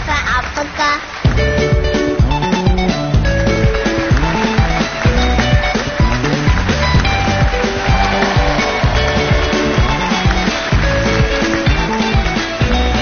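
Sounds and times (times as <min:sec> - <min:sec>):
up-tempo dance music: 0:00.0 - 0:13.0.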